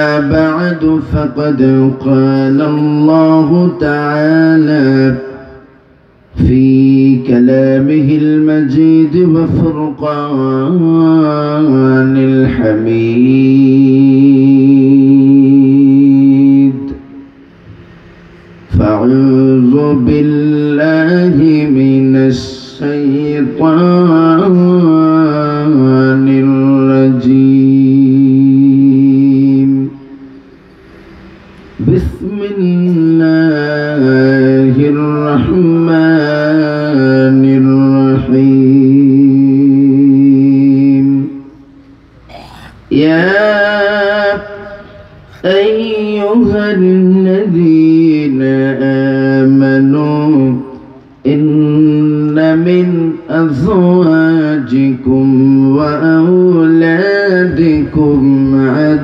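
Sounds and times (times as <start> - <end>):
man chanting through microphone: 0.0 - 59.0.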